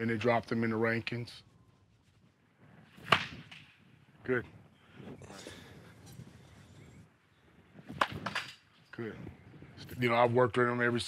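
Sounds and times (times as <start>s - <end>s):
bat cracking a ball: 2.9s - 3.8s, 7.8s - 8.7s.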